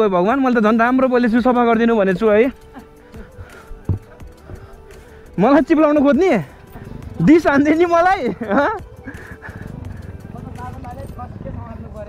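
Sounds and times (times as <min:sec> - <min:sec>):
motorcycle engine idling: 0:01.4 - 0:12.0.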